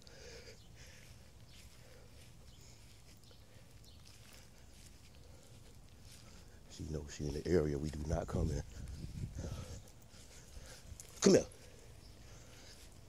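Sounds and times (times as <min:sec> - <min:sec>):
faint footsteps through grass: 0:00.0 - 0:13.0.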